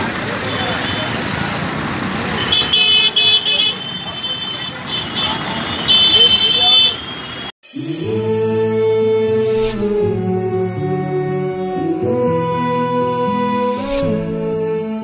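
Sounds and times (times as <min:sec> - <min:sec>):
street traffic: 0:00.0 - 0:07.6
vehicle horn honking: 0:02.4 - 0:07.4.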